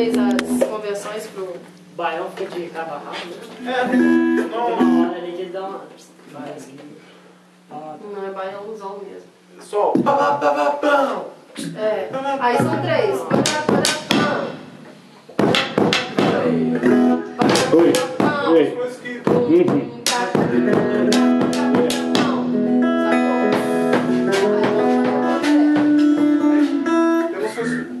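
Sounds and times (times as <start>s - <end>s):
small band playing: 0.0s - 0.9s, 3.7s - 5.3s, 11.6s - 28.0s
acoustic guitar: 0.0s - 1.2s, 3.9s - 5.1s, 11.6s - 28.0s
drum and stick strikes: 0.1s - 0.8s, 10.0s - 10.2s, 12.6s - 18.5s, 19.2s - 27.0s
person singing: 15.8s - 28.0s.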